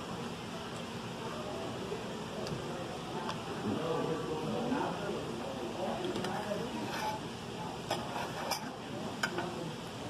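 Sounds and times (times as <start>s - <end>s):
murmur of diners' voices: 0.0s - 10.0s
cutlery clicking and scraping on plate: 7.9s - 9.5s.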